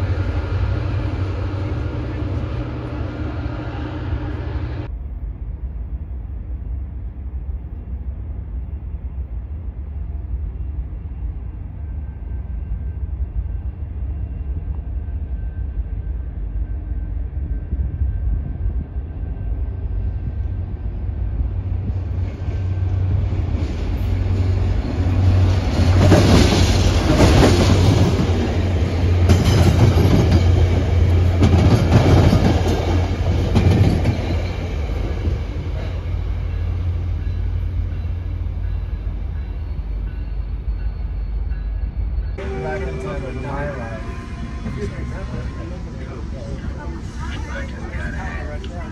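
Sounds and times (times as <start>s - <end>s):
train rumble: 0.0s - 48.9s
train wheels on rails: 7.0s - 48.9s.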